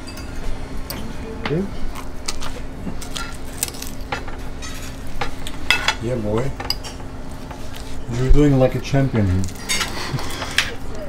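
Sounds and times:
steady low hum: 0.0s - 11.0s
utensils clinking on a plate: 2.4s - 8.7s, 9.3s - 10.9s.

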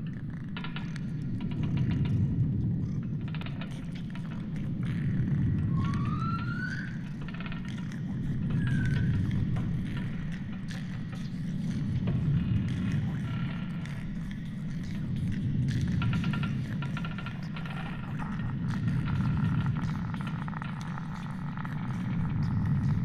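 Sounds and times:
deep rumble: 0.0s - 23.0s
scattered clicks and ticks: 7.0s - 23.0s.

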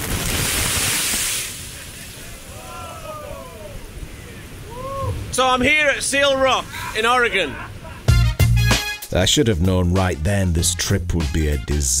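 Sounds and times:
wave breaking on rocks: 0.0s - 7.4s.

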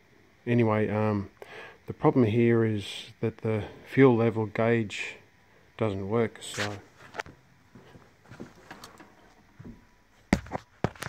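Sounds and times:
small handling noises: 6.4s - 11.0s
footsteps: 6.5s - 11.0s.

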